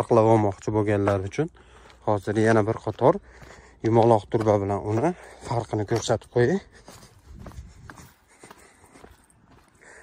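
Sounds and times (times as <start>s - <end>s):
low outdoor background: 0.0s - 10.0s
faint footsteps: 0.5s - 10.0s.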